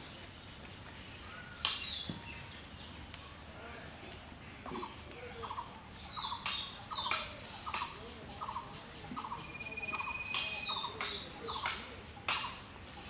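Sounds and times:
high bird chirps: 4.1 - 11.8.

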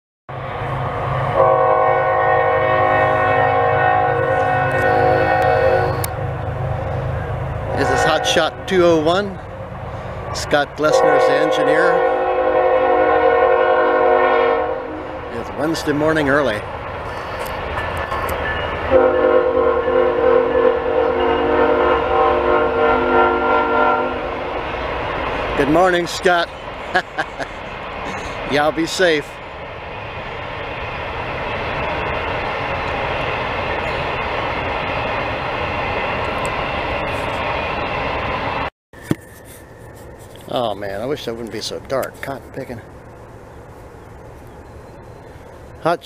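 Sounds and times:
diesel locomotive rumble: 0.3 - 46.0
locomotive air horn chord: 1.4 - 6.2, 7.7 - 8.6, 10.8 - 15.3, 18.9 - 24.5.

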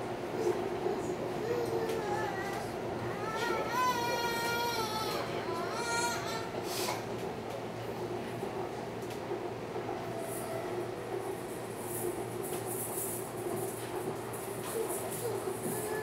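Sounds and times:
train rolling rumble: 0.0 - 16.0.

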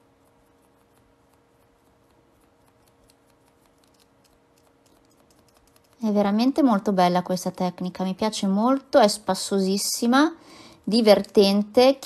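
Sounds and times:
sponge dabbing on fingernail: 0.0 - 6.5
low steady hum: 0.0 - 12.0.

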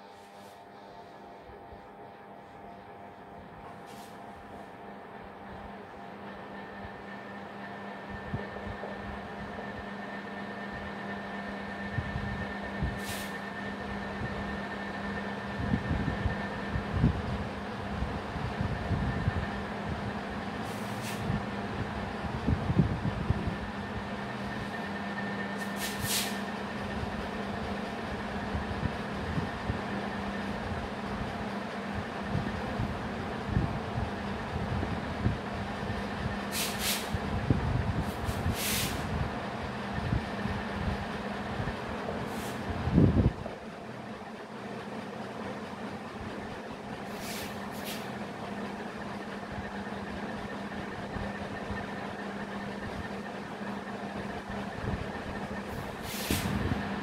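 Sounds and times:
mechanical hum and hiss: 0.0 - 57.0.

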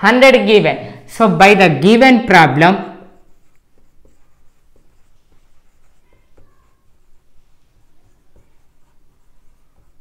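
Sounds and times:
marker writing on whiteboard: 2.5 - 10.0.

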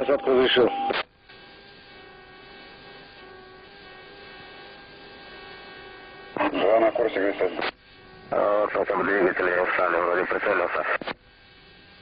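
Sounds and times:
electrical hum with hiss: 0.0 - 12.0.

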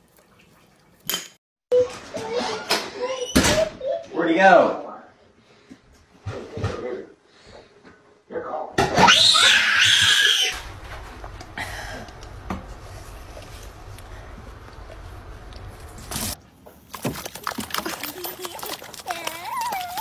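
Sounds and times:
young children squealing: 9.0 - 10.6
low steady hum: 10.6 - 18.9.

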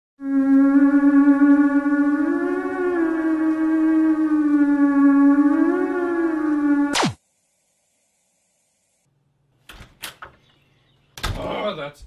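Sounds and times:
theremin-style wavering tone: 0.2 - 7.2.

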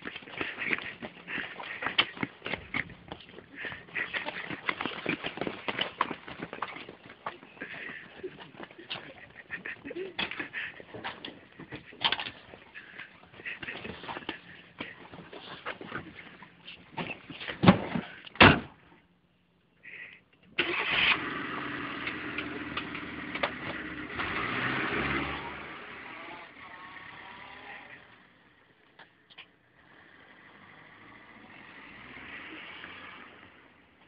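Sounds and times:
car engine starting and running: 20.5 - 28.7, 29.6 - 34.0
fainter engine sound: 20.8 - 28.8.

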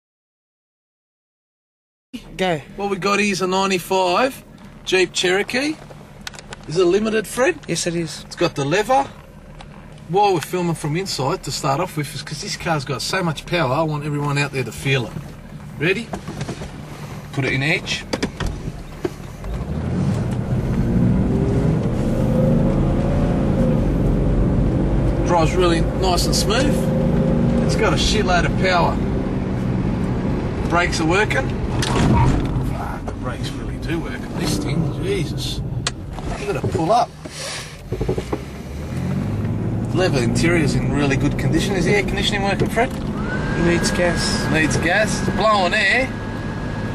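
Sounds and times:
car engine accelerating: 2.8 - 46.9.

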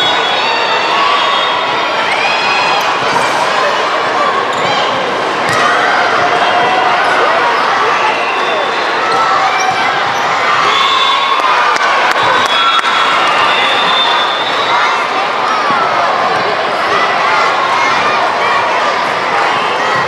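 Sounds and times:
crowd voices calling and shouting: 0.0 - 20.0.

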